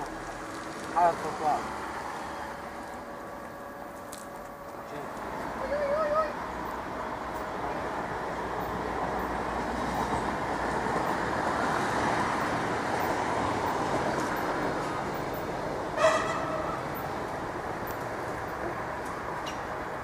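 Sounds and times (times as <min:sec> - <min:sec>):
train wheels rumbling on rails: 0:00.0 - 0:20.0.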